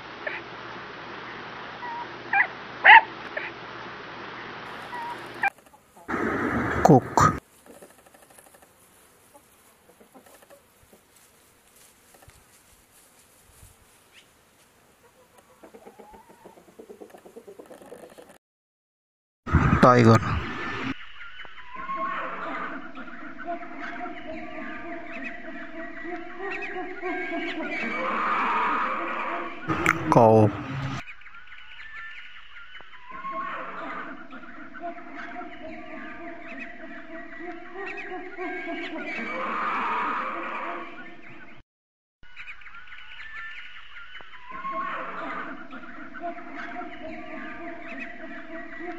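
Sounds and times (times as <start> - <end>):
chorus of short bird calls: 1.2 - 3.6, 4.4 - 18.4, 20.4 - 29.9, 30.6 - 41.6, 42.3 - 48.9
chickens clucking: 4.7 - 12.5, 13.7 - 18.4, 20.7 - 31.2, 33.8 - 41.4, 45.2 - 48.9.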